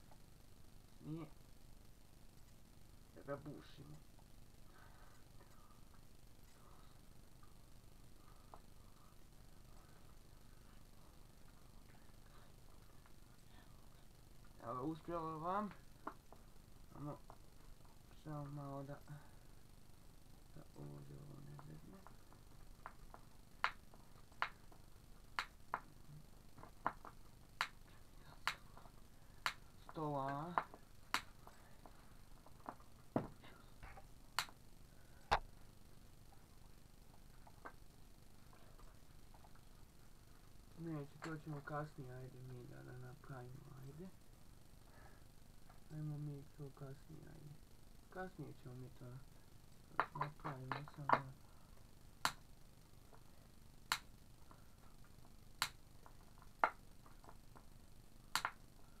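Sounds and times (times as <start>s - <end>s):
sharp clicks: 58.3s - 58.6s.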